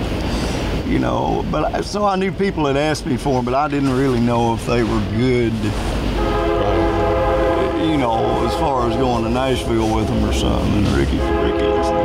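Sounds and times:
train horn blast: 6.1 - 12.0.

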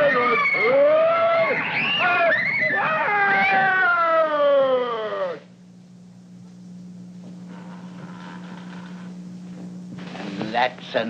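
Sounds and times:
high-pitched wail falling in pitch: 0.0 - 5.4
steady low hum: 0.0 - 11.0.

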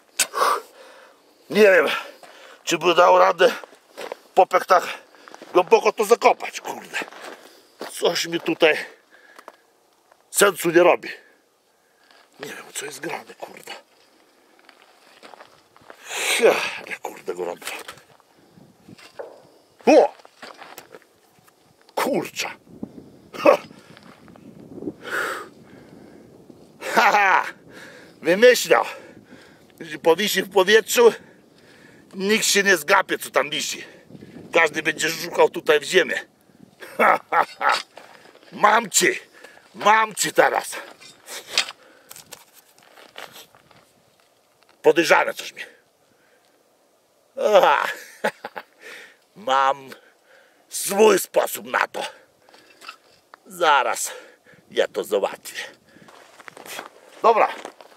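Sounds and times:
footsteps on gravelly ground: 1.6 - 10.3, 12.0 - 16.2, 17.0 - 21.9, 23.6 - 24.8, 36.8 - 44.9, 55.5 - 57.9.

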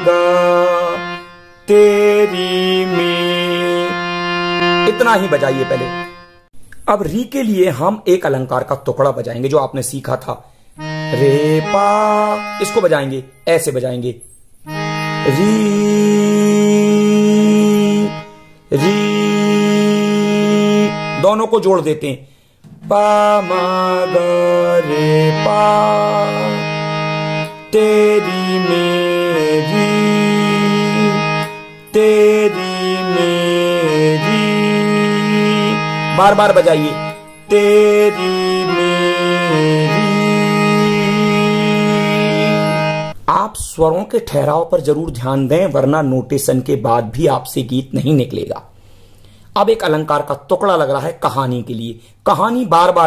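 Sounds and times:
electronic keyboard sustained note: 0.0 - 6.5, 10.8 - 13.5, 14.6 - 21.5, 22.7 - 43.2.

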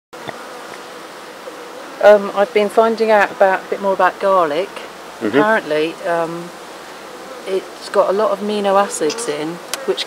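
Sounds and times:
honeybees buzzing: 0.2 - 10.0.

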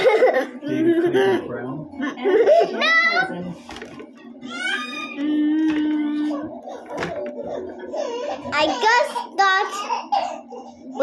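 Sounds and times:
girl humming: 5.1 - 6.4.

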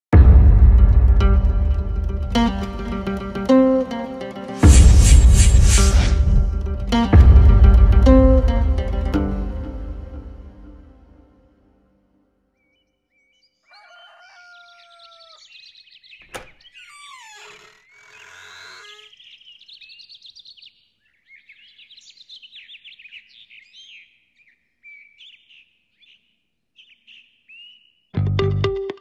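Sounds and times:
birds chirping and calling: 12.6 - 28.2
low gliding bird call: 16.6 - 19.6.

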